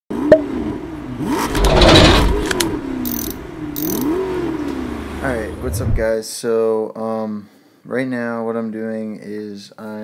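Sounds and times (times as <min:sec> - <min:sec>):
car engine revving: 0:00.1 - 0:06.1
sharp click: 0:01.5 - 0:04.1.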